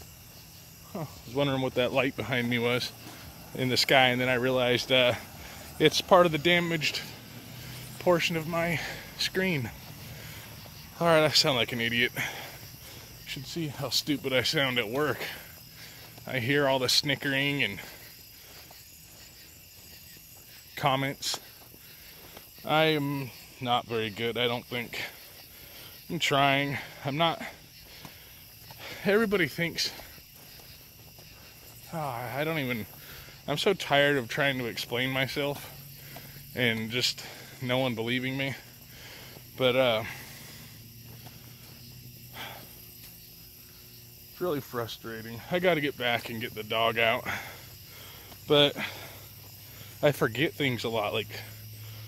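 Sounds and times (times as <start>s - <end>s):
crickets trilling: 0.0s - 52.0s.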